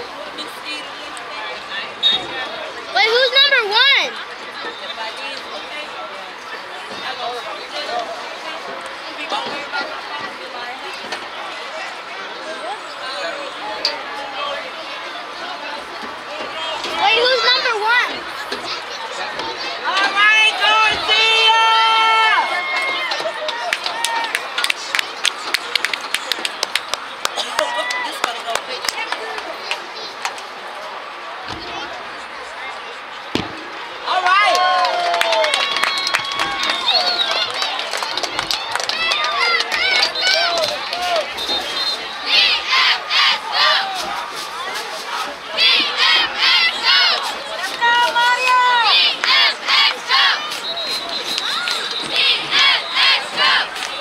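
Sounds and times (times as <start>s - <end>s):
crowd chatter: 0.0s - 54.0s
young voices chanting a cheer: 15.5s - 24.7s, 27.4s - 54.0s.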